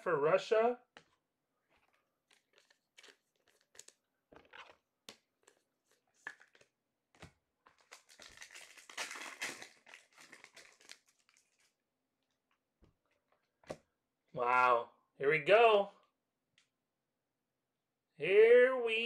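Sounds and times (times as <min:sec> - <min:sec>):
card pack wrapper tearing: 0:02.3 - 0:04.8, 0:07.7 - 0:11.7.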